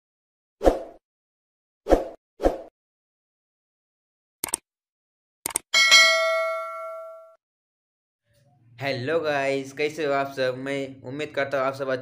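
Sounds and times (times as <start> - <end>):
notification bell ding: 5.8 - 7.4.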